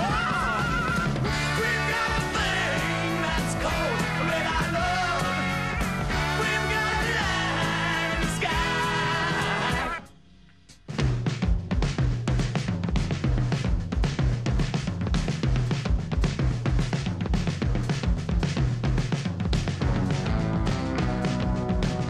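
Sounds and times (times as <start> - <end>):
rock band music: 0.0 - 10.1, 11.0 - 22.0
drum kit driving beat: 0.0 - 22.0.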